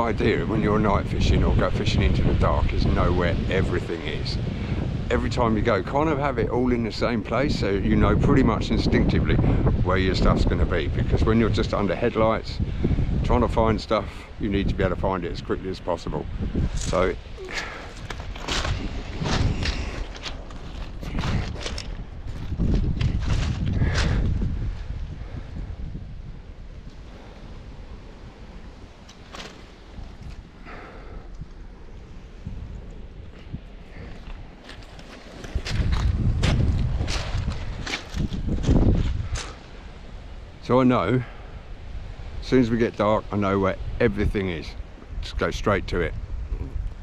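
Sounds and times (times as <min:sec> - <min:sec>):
wind rumbling on microphone: 0:00.0 - 0:47.0
footsteps crunching on pebbles: 0:17.5 - 0:25.0, 0:33.2 - 0:39.7.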